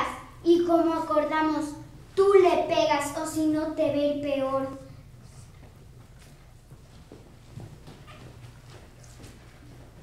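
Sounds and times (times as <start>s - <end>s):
steady low hum: 0.0s - 10.0s
soft footsteps on floor: 5.4s - 10.0s.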